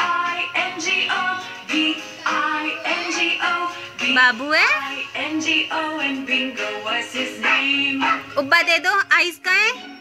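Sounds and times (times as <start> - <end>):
nursery rhyme music: 0.0 - 10.0
dog yipping: 8.0 - 8.3.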